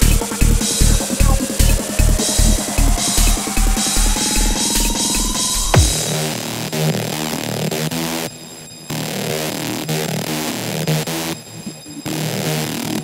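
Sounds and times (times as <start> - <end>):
buzzing synth riff: 0.0 - 13.0.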